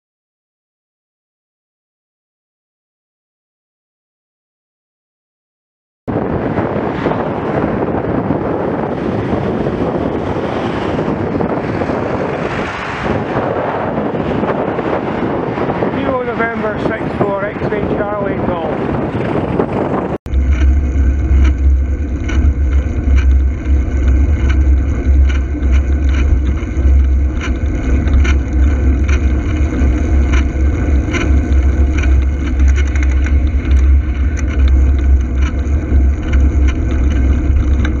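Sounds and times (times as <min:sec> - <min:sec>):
road noise: 0:06.1 - 0:38.0
wind buffeting microphone: 0:06.1 - 0:38.0
bicycle clicks and knocks: 0:19.1 - 0:38.0.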